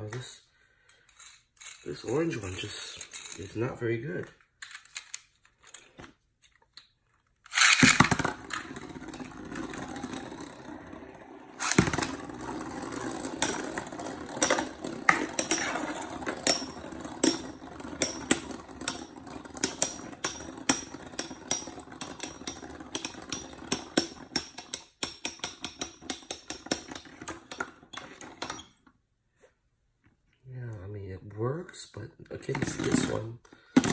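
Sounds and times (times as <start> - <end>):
spinning tops whirring: 7.5 - 28.6.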